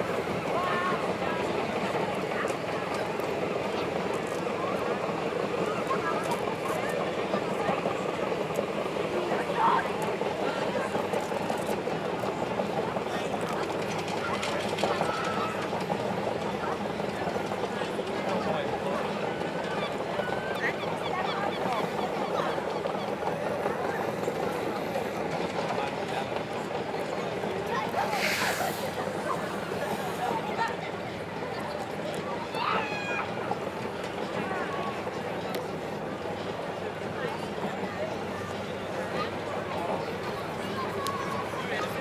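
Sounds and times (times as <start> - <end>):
onlookers chattering: 0.0 - 42.0.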